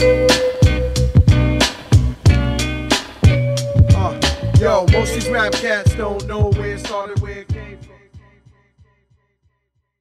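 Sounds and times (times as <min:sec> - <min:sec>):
hip-hop beat drum thumps: 0:00.0 - 0:08.5.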